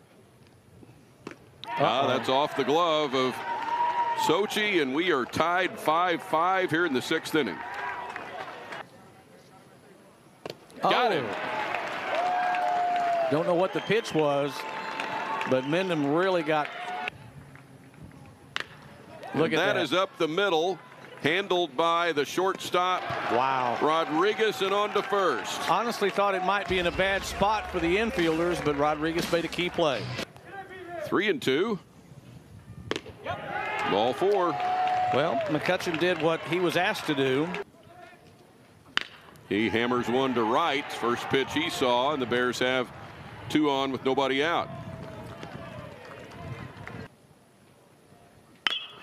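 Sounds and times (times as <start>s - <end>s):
stadium ambience: 0.0s - 49.0s
faint crowd noise: 1.3s - 34.6s
baseball popping into mitt: 32.9s - 33.2s.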